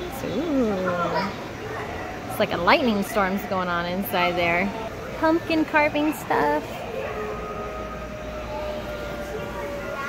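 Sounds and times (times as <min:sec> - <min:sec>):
store background hum: 0:00.0 - 0:10.0.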